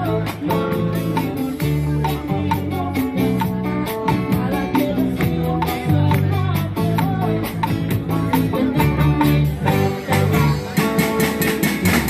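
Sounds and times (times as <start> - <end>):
bass guitar low notes: 0.0 - 12.0
congas: 0.0 - 12.0
drum kit beat: 0.0 - 12.0
strummed guitar: 0.0 - 12.0.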